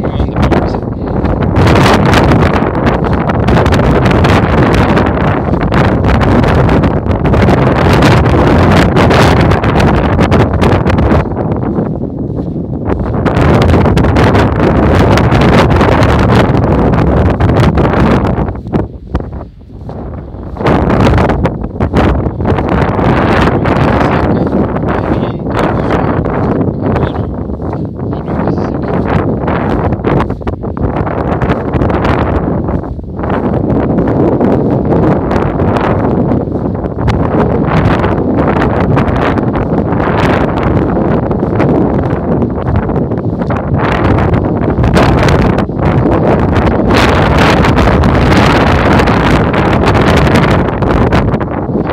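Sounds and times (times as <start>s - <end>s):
strong wind buffeting microphone: 0.0s - 51.9s.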